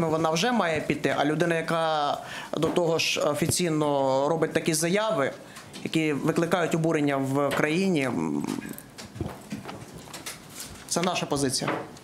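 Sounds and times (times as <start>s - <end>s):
man speaking: 0.0s - 8.8s, 10.9s - 11.9s.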